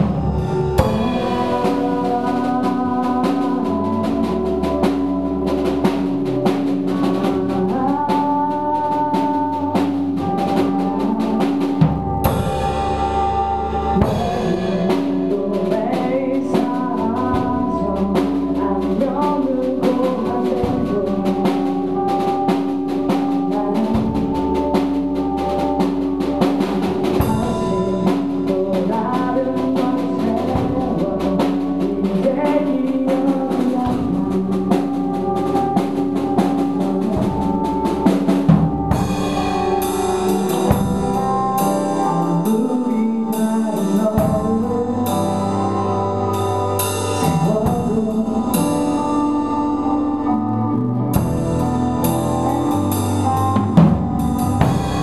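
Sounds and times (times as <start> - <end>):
drum kit: 0.0 - 55.0
electric bass: 0.0 - 55.0
woman singing: 0.8 - 46.6, 47.2 - 50.4.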